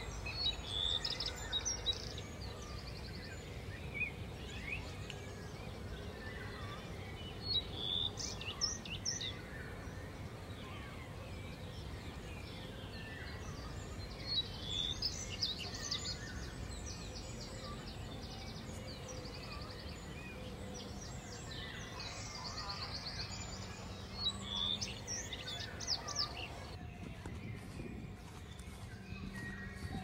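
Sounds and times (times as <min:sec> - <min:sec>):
birds singing: 0:00.0 - 0:30.0.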